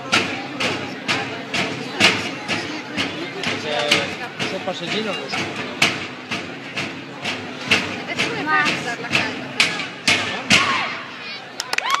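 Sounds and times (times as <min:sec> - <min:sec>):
parade drums beating: 0:00.0 - 0:11.6
spectators talking: 0:00.0 - 0:12.0.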